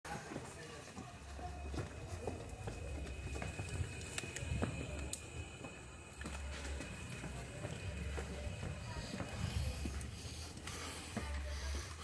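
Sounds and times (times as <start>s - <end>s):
hurried footsteps on concrete: 0.1s - 12.0s.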